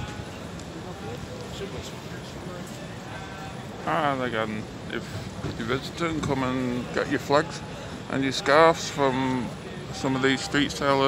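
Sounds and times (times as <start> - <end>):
faint voices of passers-by: 0.0 - 11.0.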